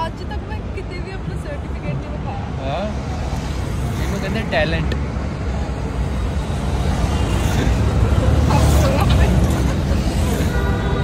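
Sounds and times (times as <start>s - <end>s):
passing traffic: 0.0s - 11.0s
road and vehicle rumble: 0.0s - 11.0s.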